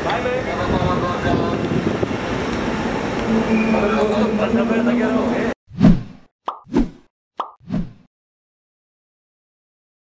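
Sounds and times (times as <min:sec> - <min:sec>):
crowd and voice noise: 0:00.0 - 0:02.2, 0:03.2 - 0:05.6
cartoon pop sound effects: 0:06.5 - 0:06.8, 0:07.4 - 0:07.6.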